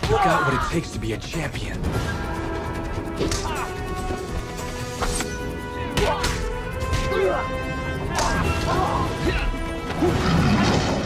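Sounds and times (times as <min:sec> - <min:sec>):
fighters shouting: 0:00.0 - 0:00.9, 0:05.8 - 0:10.1
soundtrack music: 0:00.0 - 0:11.0.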